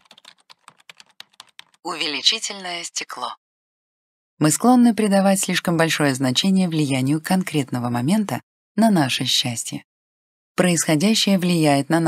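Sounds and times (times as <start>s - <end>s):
keyboard typing: 0.0s - 1.8s.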